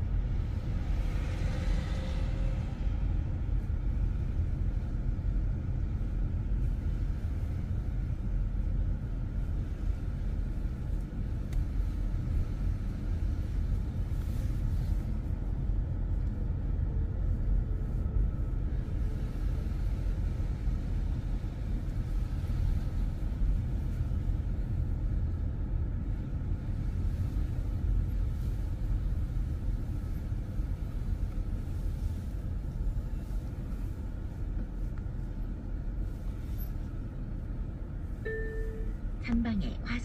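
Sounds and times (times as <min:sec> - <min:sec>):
car engine and road rumble: 0:00.0 - 0:40.0.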